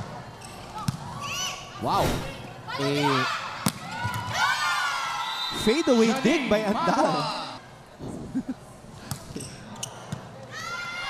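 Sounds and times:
low crowd murmur: 6.9 - 11.0.

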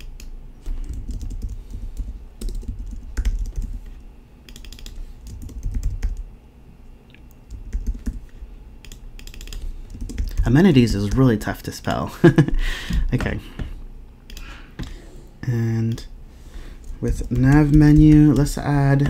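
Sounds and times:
typing on computer keyboard: 0.0 - 3.8, 4.5 - 6.2, 7.5 - 10.5, 17.0 - 19.0.

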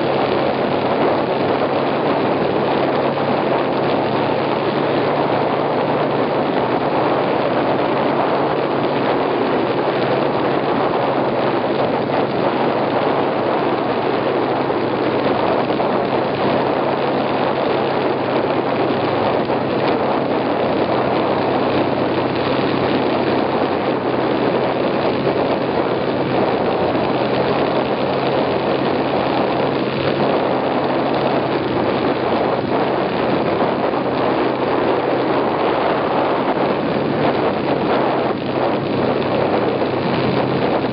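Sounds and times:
snowmobile engine running: 0.0 - 40.9.

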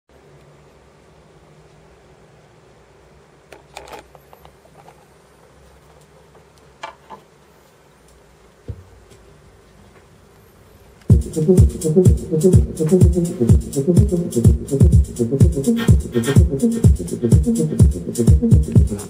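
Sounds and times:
turntable hum and hiss: 0.1 - 19.0.

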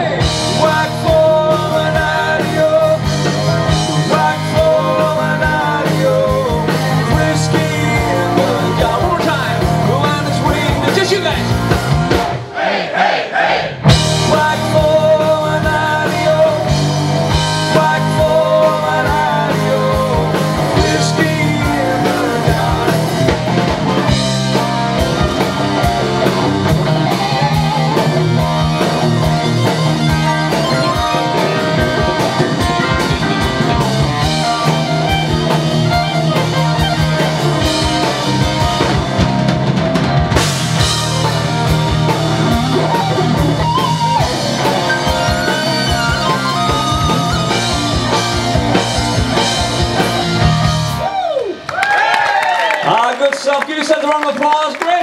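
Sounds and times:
live rock band playing: 0.0 - 12.6, 13.7 - 55.0
crowd applauding: 50.1 - 55.0.

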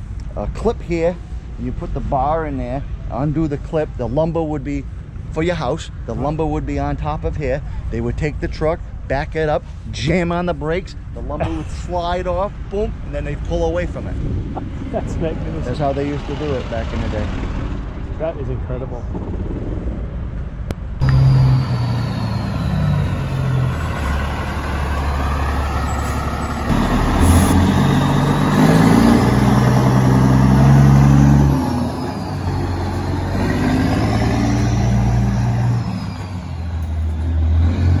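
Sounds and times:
truck diesel engine revving: 21.0 - 38.0.

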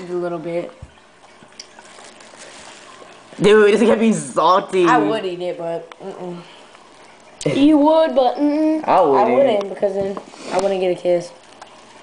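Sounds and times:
salt trickling onto tile: 0.0 - 4.2.

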